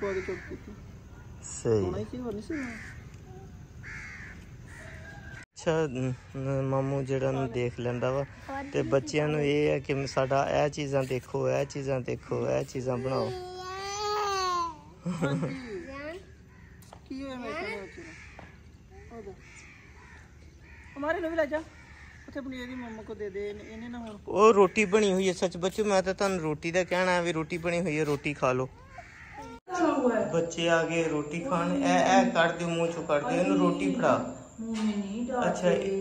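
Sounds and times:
crow cawing: 0.0 - 0.8, 2.5 - 5.4, 6.1 - 10.6, 15.2 - 25.6, 28.8 - 29.6
faint bird calls: 0.0 - 13.4, 15.2 - 29.6
person speaking: 29.7 - 34.5.

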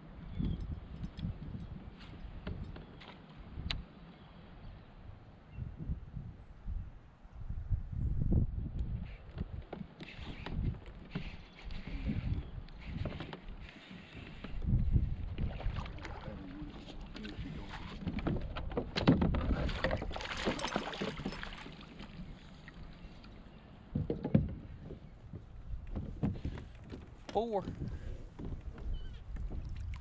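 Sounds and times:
water moving against kayak: 8.8 - 30.0.

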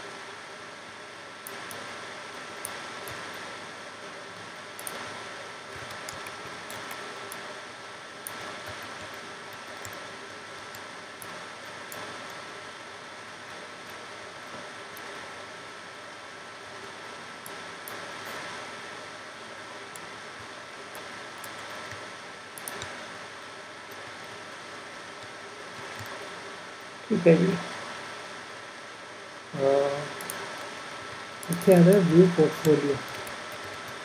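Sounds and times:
faint high whine: 0.0 - 34.0
microphone hiss: 0.0 - 34.0.

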